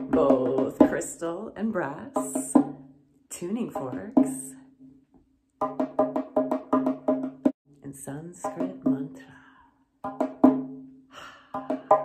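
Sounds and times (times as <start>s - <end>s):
frame drum tapped with fingertips: 0.0s - 1.2s, 2.0s - 2.9s, 3.6s - 4.6s, 5.6s - 7.6s, 8.4s - 9.3s, 10.0s - 10.9s, 11.5s - 12.0s.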